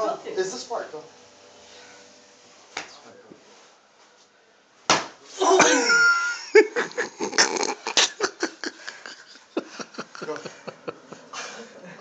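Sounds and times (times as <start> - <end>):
sharp smack: 4.9 - 5.2.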